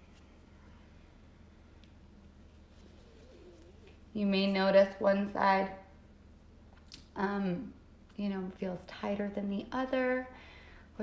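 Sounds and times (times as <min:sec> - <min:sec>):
faint low bird coo: 0:02.8 - 0:04.1.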